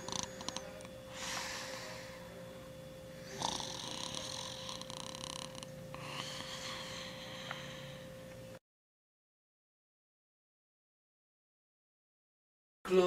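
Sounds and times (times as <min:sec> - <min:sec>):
man snoring: 0:00.0 - 0:02.4, 0:03.2 - 0:08.0.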